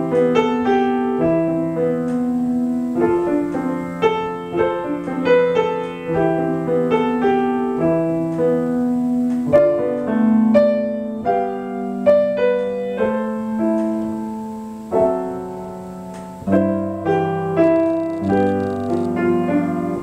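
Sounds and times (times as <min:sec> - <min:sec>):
solo piano carol: 0:00.0 - 0:20.0.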